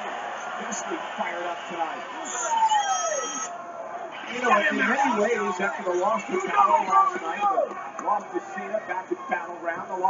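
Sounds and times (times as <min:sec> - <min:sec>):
broadcast background noise: 0:00.0 - 0:10.0.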